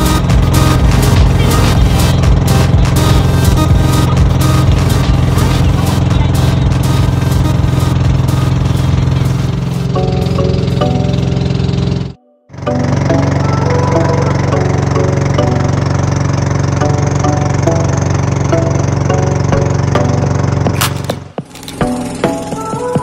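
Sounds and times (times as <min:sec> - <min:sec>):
background music: 0:00.0 - 0:23.0
boat engine droning: 0:00.0 - 0:23.0.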